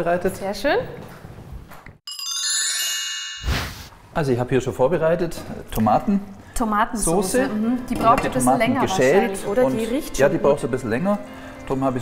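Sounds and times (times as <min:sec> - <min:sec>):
bright chime sting: 0:02.1 - 0:04.0.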